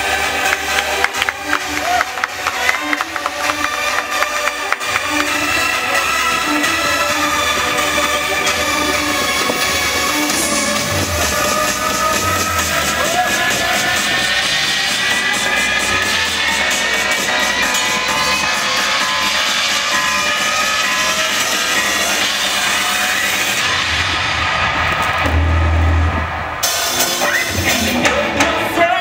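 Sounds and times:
drum kit: 0:01.0 - 0:19.2, 0:21.4 - 0:29.0
heavy low hit: 0:24.1 - 0:27.1.

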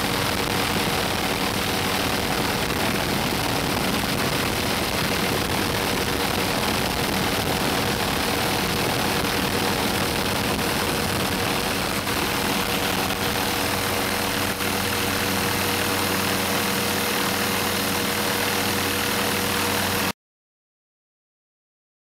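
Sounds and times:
helicopter engine drone in cabin: 0:00.0 - 0:20.2.

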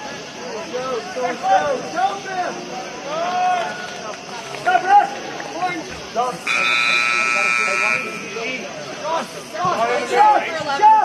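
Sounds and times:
people shouting: 0:00.8 - 0:03.9
buzzer horn blast: 0:06.4 - 0:08.6.

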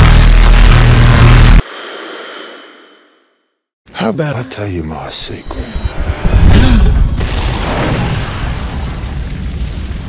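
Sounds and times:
deep bass drone: 0:00.0 - 0:01.6.

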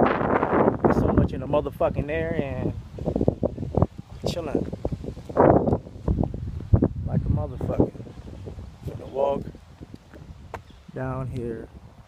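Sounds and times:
wind over phone microphone: 0:00.0 - 0:12.0.

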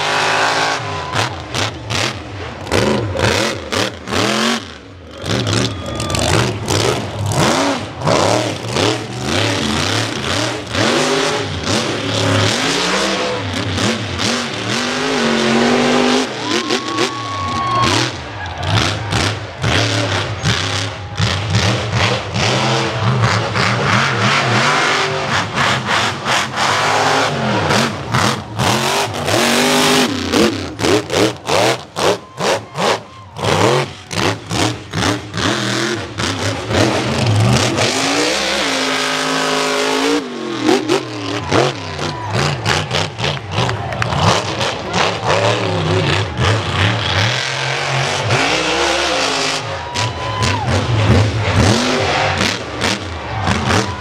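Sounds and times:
truck engine revving hard: 0:00.0 - 0:54.0.

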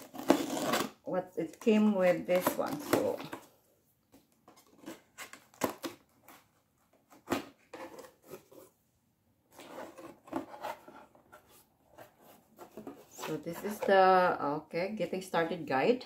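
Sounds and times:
packing tape being slit: 0:00.0 - 0:01.0
cardboard and paper rustling: 0:04.2 - 0:08.8, 0:09.5 - 0:14.3
cardboard scrapes and knocks: 0:09.5 - 0:13.9.

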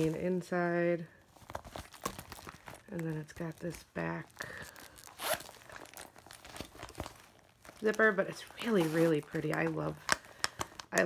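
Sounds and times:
leather bag rustling and clicks: 0:01.2 - 0:11.0
metal zipper pulled: 0:05.0 - 0:05.7.

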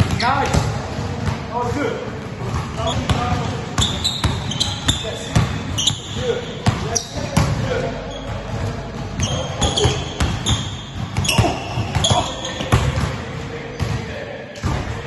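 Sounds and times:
basketballs bouncing on gym floor: 0:00.0 - 0:15.0.

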